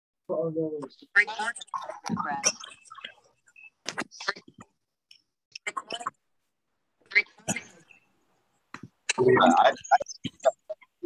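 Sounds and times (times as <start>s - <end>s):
voices over video call: 0.2s - 11.0s.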